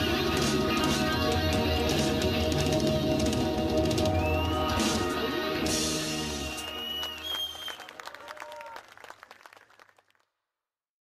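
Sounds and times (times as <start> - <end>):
live band final notes: 0.0 - 6.8
audience applause: 4.1 - 10.3.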